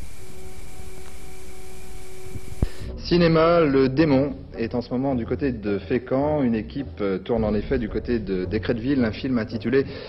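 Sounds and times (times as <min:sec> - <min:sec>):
faint hum tones: 0:00.0 - 0:10.0
steady tape hiss: 0:00.0 - 0:10.0.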